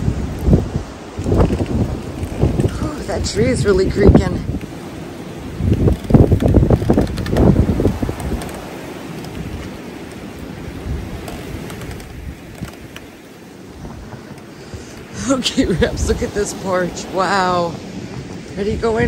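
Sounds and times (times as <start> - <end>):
storm wind gusting: 0.0 - 19.0
wind buffeting microphone: 0.0 - 19.0.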